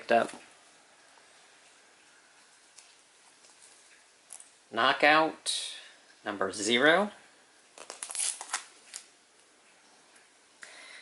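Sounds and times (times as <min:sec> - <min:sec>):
plastic bags crinkling: 0:02.7 - 0:04.6, 0:07.7 - 0:09.1.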